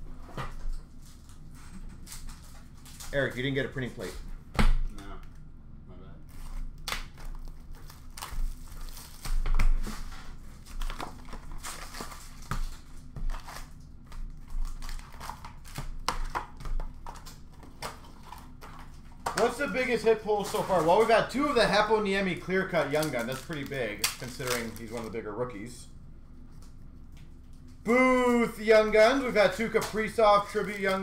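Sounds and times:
wrappers crinkling and rustling: 6.3 - 22.0, 22.6 - 25.2, 29.0 - 31.0.

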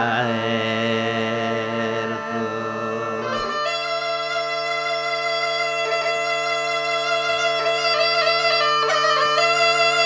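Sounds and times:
bagpipe drone and held notes: 0.0 - 10.0.

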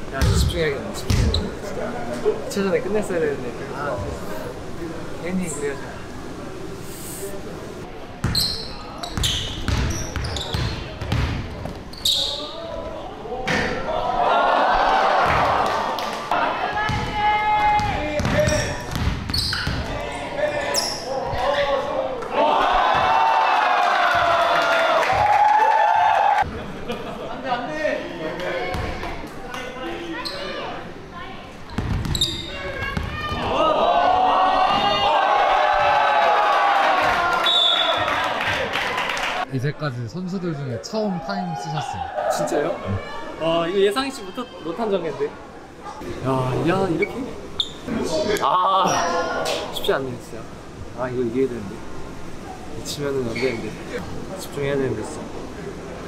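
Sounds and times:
sneaker squeaks: 8.2 - 12.6, 18.2 - 21.1, 29.6 - 30.7, 31.7 - 33.4, 47.0 - 47.9, 48.8 - 49.2, 53.3 - 53.7
spectators shouting and cheering: 12.2 - 18.9, 19.7 - 26.5, 32.6 - 39.5, 40.9 - 43.4.

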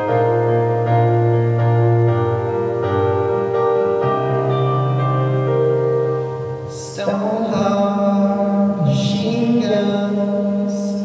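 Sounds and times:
young man singing long note: 6.7 - 11.0.

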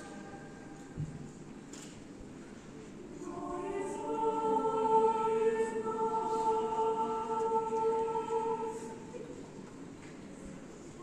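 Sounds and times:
choir singing held chords: 3.2 - 9.5.

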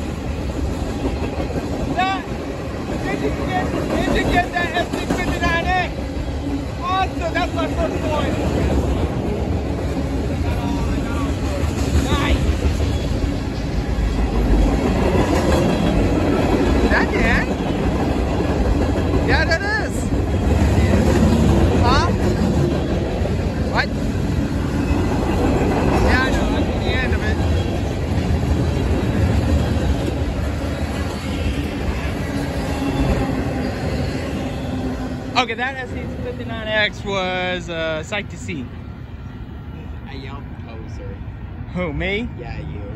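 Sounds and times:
steel wheels rumbling on rail: 0.0 - 40.6
wheels squealing: 10.6 - 36.1.

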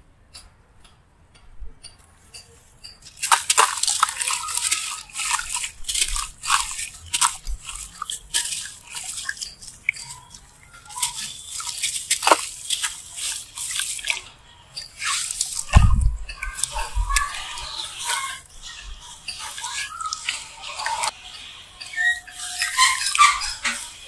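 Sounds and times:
block crumbling with gritty crunching: 3.0 - 14.0
grains falling into water: 3.0 - 17.6.

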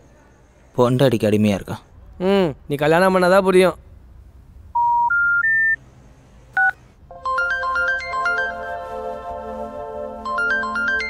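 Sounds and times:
phone ringtone melody: 4.8 - 5.8, 6.6 - 11.0.

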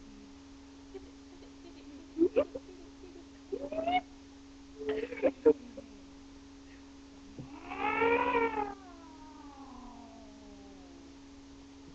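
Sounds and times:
steady low hum: 0.0 - 11.9
faint tone gliding downward: 7.3 - 11.3
meow-like call: 7.4 - 11.1.

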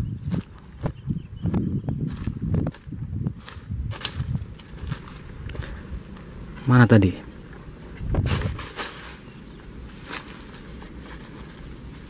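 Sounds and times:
footsteps on dry leaves and stalks: 0.2 - 0.9, 1.5 - 6.3, 8.2 - 12.0.

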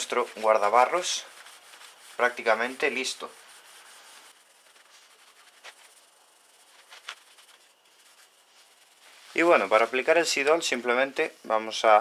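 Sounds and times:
hand rubbing on metal mudguard: 0.0 - 10.9
quiet hiss: 0.0 - 12.0.

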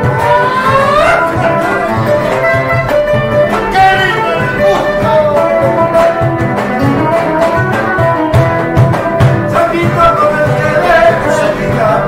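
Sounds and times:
acoustic guitars playing: 0.0 - 12.0
hand-slapped cajon beat: 0.0 - 12.0.

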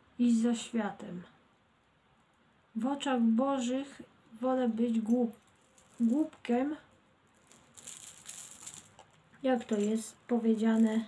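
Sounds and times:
soft rattly rustling: 4.6 - 11.0.

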